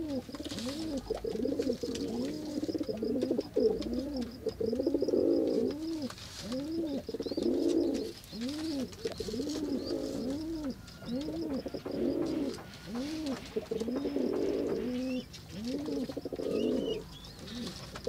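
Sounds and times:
doves cooing: 0.0 - 18.0.

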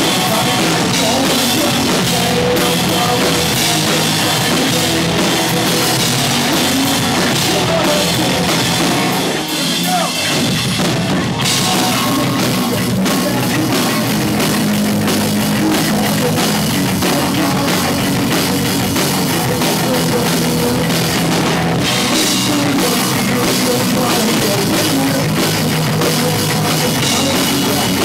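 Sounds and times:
drum kit: 0.0 - 28.0
electric guitars: 0.0 - 28.0.

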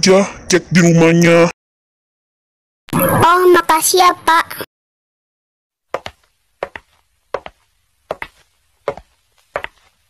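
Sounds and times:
footsteps walking: 5.9 - 10.0.

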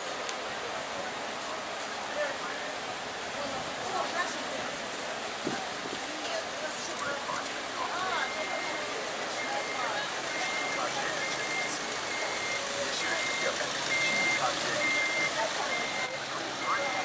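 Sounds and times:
voices on busy street: 0.0 - 17.0
crossing signal beeping: 7.3 - 17.0.

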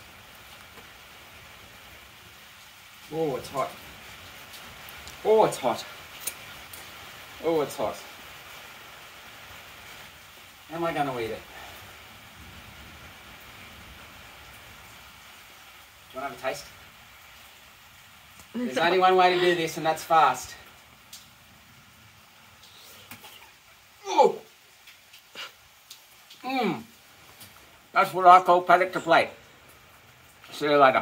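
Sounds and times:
faint background hiss: 0.0 - 31.0.

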